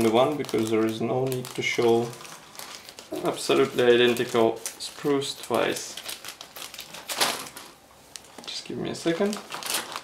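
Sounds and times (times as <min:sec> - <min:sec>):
plastic sprues rustling and clicking: 0:00.0 - 0:10.0.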